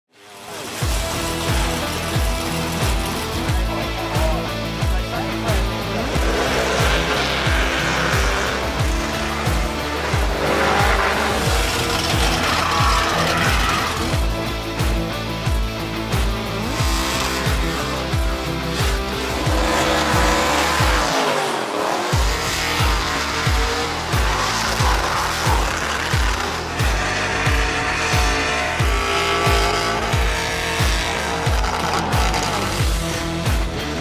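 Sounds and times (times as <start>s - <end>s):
car engine revving: 0.1s - 34.0s
backing music with kick drum: 0.8s - 21.2s, 22.2s - 34.0s.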